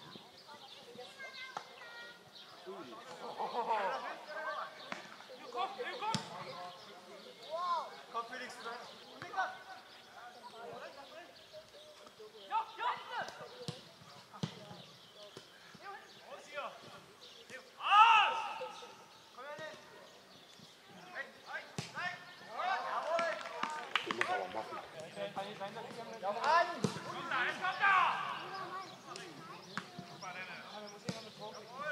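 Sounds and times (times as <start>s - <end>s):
football players shouting: 17.8s - 19.0s, 26.4s - 29.4s.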